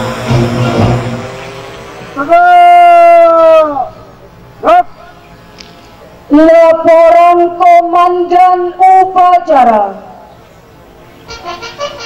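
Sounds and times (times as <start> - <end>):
man shouting drill commands: 2.2 - 4.0, 4.6 - 5.0, 6.3 - 10.0.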